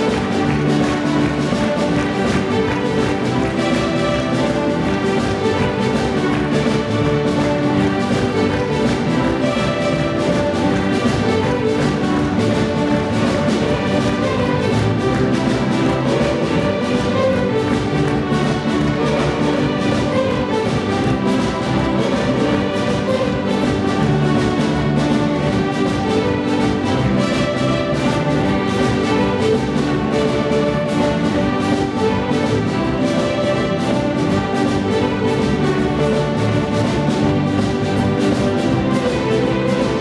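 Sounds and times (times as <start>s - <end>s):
fiddle orchestra playing: 0.0s - 40.0s.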